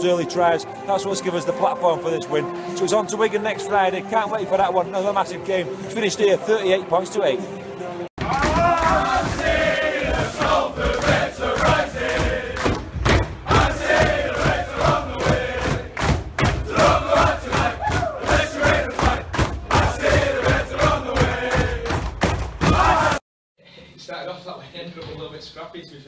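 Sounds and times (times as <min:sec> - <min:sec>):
claps and thumps beating time: 0:08.2 - 0:23.2
men singing a chant together: 0:08.6 - 0:12.6, 0:13.5 - 0:15.9, 0:16.7 - 0:22.0.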